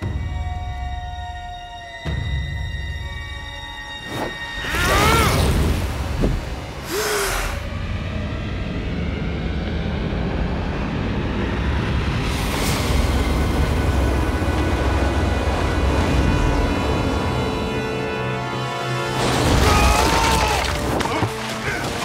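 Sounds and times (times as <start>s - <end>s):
music: 0.0s - 6.9s, 7.5s - 22.0s.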